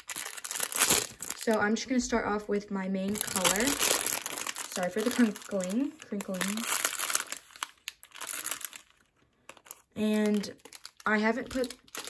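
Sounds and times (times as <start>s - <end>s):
plastic bag crinkling: 0.0s - 1.7s, 3.1s - 12.0s.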